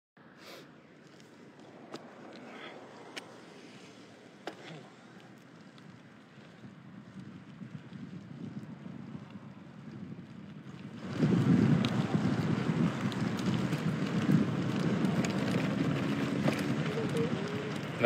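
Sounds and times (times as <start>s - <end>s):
wind buffeting microphone: 5.3s - 18.0s.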